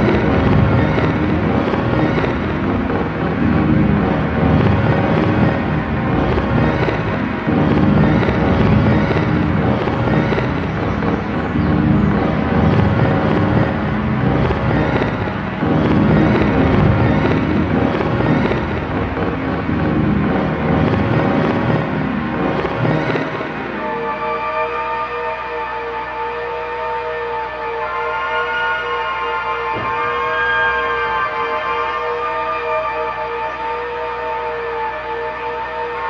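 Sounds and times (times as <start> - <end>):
electronic drone music: 0.0 - 36.0.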